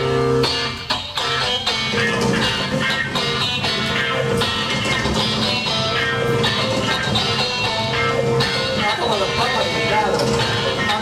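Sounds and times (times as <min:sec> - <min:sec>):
electric guitar chords: 0:00.0 - 0:11.0
drum beat: 0:00.9 - 0:11.0.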